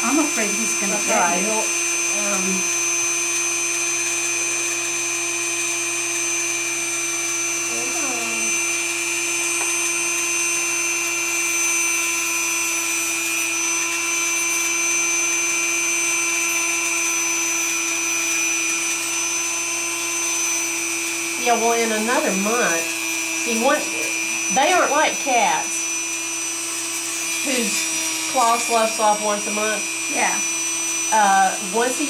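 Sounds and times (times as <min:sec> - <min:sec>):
rotary tool whining: 0:00.0 - 0:32.0.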